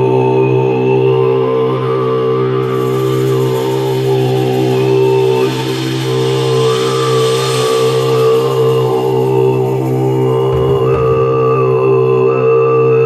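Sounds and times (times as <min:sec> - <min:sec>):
low chant-like vocal drone: 0:00.0 - 0:13.0
thin high sliding tone: 0:02.6 - 0:12.0.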